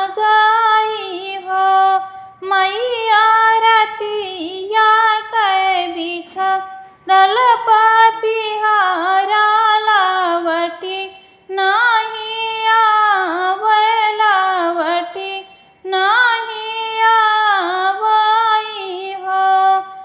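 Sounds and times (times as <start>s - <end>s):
woman singing folk song: 0.0s - 20.0s.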